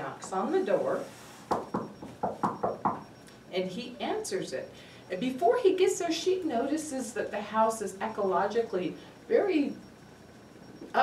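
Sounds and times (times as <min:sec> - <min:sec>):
knuckles knocking on table: 0:01.5 - 0:03.0.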